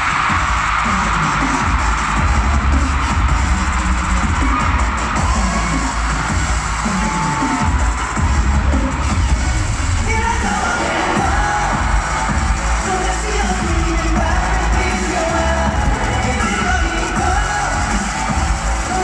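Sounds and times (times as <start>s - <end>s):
audience cheering: 0.0s - 19.0s
pop music over sound system: 0.0s - 19.0s
person singing: 10.0s - 19.0s.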